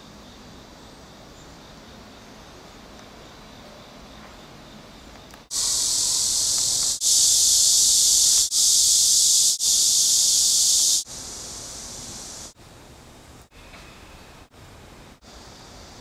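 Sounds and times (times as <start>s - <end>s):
high-pitched hiss: 0.0s - 16.0s.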